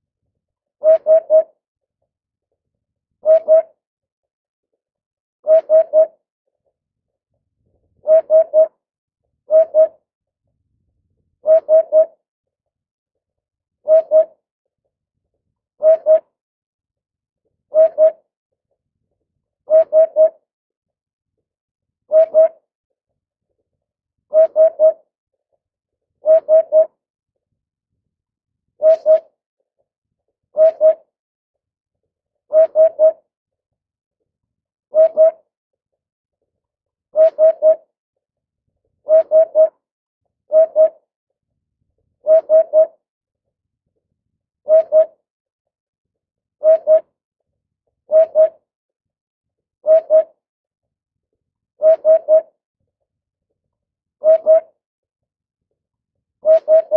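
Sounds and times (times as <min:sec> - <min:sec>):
bird singing soft hoots: 0:00.8 - 0:01.6, 0:03.2 - 0:03.8, 0:05.4 - 0:06.2, 0:08.0 - 0:08.8, 0:09.5 - 0:10.0, 0:11.4 - 0:12.2, 0:13.8 - 0:14.4, 0:15.8 - 0:16.4, 0:17.7 - 0:18.3, 0:19.7 - 0:20.5, 0:22.1 - 0:22.7, 0:24.3 - 0:25.1, 0:26.2 - 0:27.0, 0:28.8 - 0:29.4, 0:30.5 - 0:31.1, 0:32.5 - 0:33.3, 0:34.9 - 0:35.5, 0:37.2 - 0:37.9, 0:39.0 - 0:39.8, 0:40.5 - 0:41.1, 0:42.2 - 0:43.0, 0:44.6 - 0:45.2, 0:46.6 - 0:47.1, 0:48.1 - 0:48.7, 0:49.8 - 0:50.4, 0:51.8 - 0:52.6, 0:54.2 - 0:54.8, 0:56.4 - 0:56.9.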